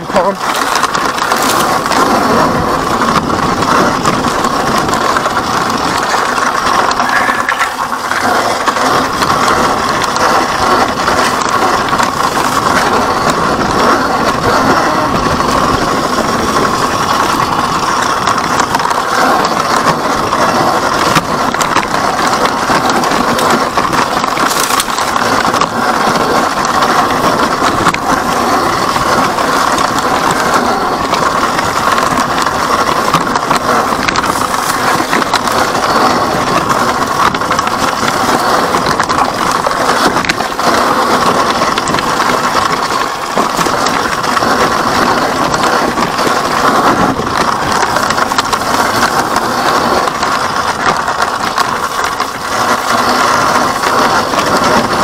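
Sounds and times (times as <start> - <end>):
bike rattling: 0.0 - 55.0
tyres crunching over stones: 0.2 - 55.0.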